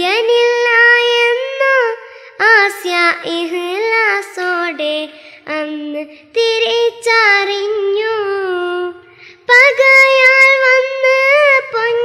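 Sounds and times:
child singing in high voice: 0:00.0 - 0:12.0.

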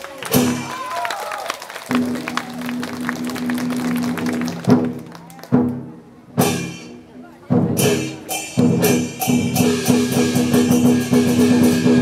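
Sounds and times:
gong and cymbal strikes: 0:07.8 - 0:12.0.

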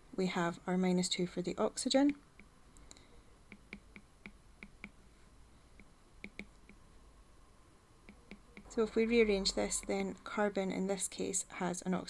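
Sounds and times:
stylus tapping on glass screen: 0:03.5 - 0:05.0, 0:05.8 - 0:06.8.

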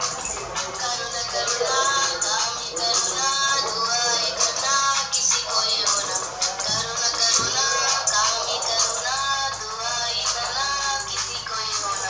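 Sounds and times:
backing track: 0:00.0 - 0:12.0
woman singing pop song: 0:00.0 - 0:12.0.

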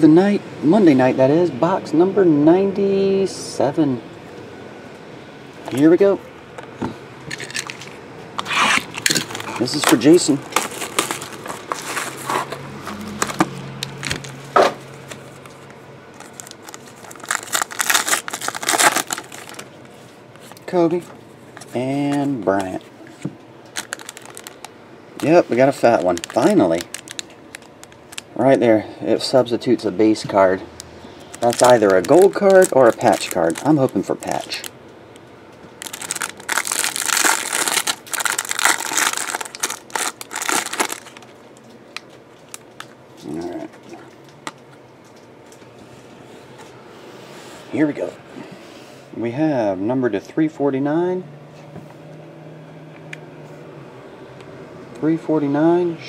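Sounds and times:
plastic wrapping crinkling: 0:07.3 - 0:20.0, 0:23.6 - 0:28.4, 0:31.2 - 0:43.6
packaging being torn open: 0:08.4 - 0:12.4, 0:16.2 - 0:19.7, 0:23.7 - 0:28.3, 0:31.3 - 0:34.7, 0:35.8 - 0:41.3.

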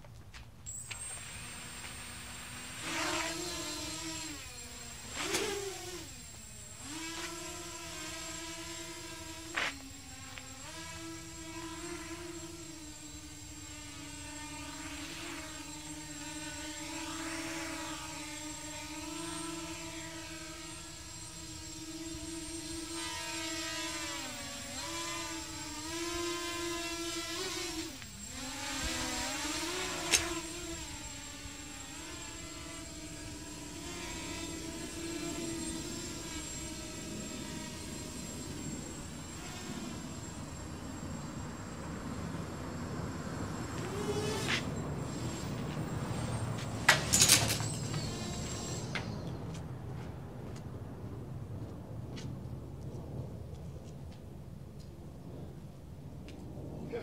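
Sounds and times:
toy drone propellers whining: 0:00.7 - 0:49.8.

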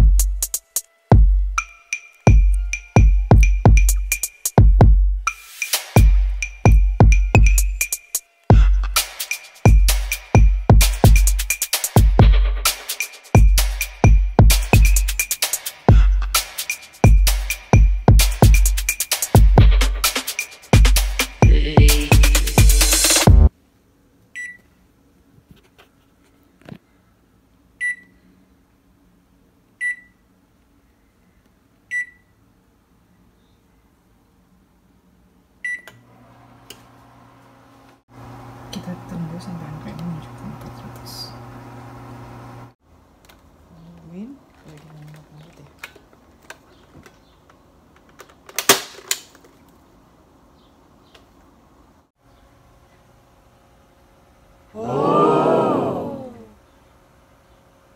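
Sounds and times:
music: 0:00.0 - 0:23.5
oven control panel beeps: 0:24.4 - 0:24.6, 0:27.8 - 0:28.2, 0:29.8 - 0:30.2, 0:31.9 - 0:32.3, 0:35.6 - 0:36.0.

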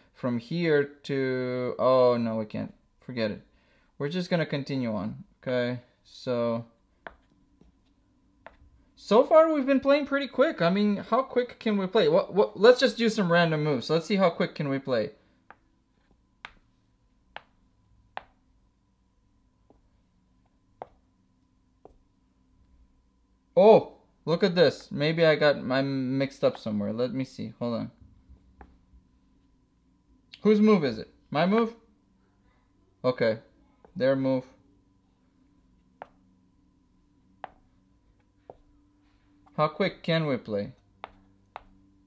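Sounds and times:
chess pieces knocking on board: 0:07.0 - 0:07.3, 0:17.3 - 0:17.6, 0:18.2 - 0:18.4
chess pieces tapping on board: 0:07.0 - 0:07.7, 0:15.5 - 0:16.7, 0:17.3 - 0:17.6, 0:18.2 - 0:18.4.

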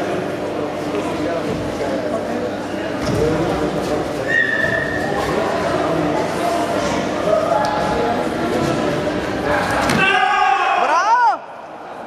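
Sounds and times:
voices in a large hall: 0:00.0 - 0:12.0
loud drawn-out shout: 0:10.0 - 0:11.8.

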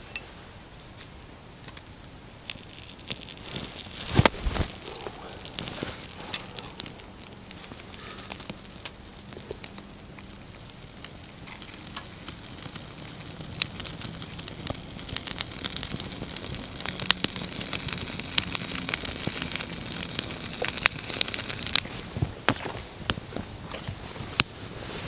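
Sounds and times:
wood fire crackling and popping: 0:00.0 - 0:25.0.

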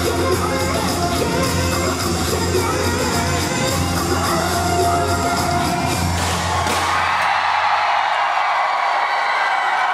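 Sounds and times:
pop concert music over sound system: 0:00.0 - 0:07.7
crowd screaming and cheering: 0:03.1 - 0:09.9.

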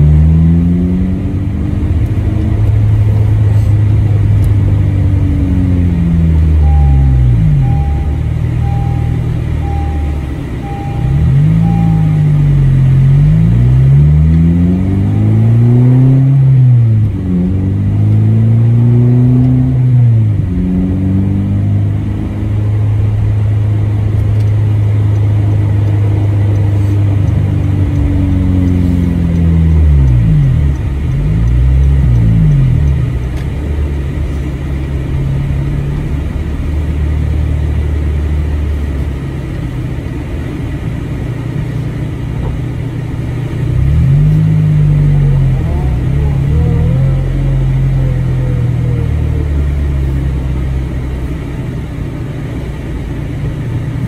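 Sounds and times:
car engine accelerating: 0:00.0 - 0:54.0
faint beep: 0:06.5 - 0:13.1.

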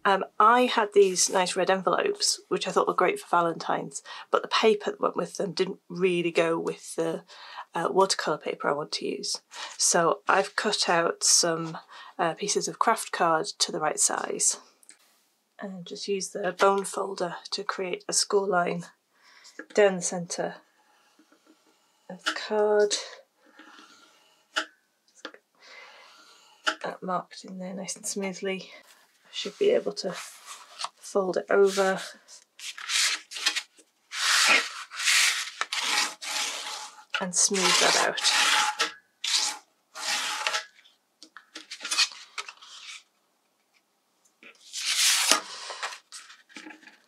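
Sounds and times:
card and paper rustling: 0:28.9 - 0:36.8, 0:41.4 - 0:43.1
paper sliding on paper: 0:31.6 - 0:37.0, 0:44.7 - 0:46.4
bone folder scraping card: 0:31.6 - 0:40.8, 0:41.4 - 0:43.0, 0:44.6 - 0:47.0.

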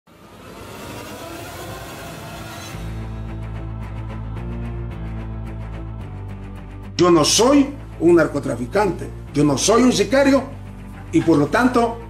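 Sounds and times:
vehicle engines running: 0:00.1 - 0:03.2
outdoor rushing noise: 0:00.1 - 0:03.6.

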